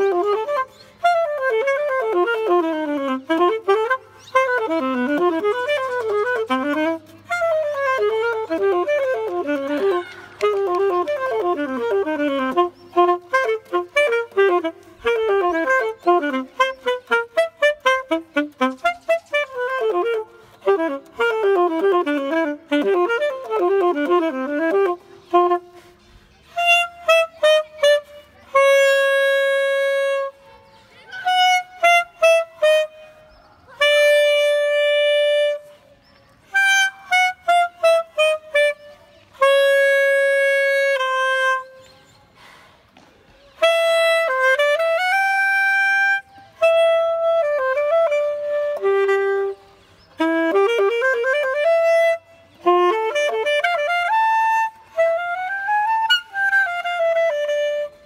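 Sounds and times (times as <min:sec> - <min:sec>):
solo alto saxophone: 0:00.0 - 0:58.0.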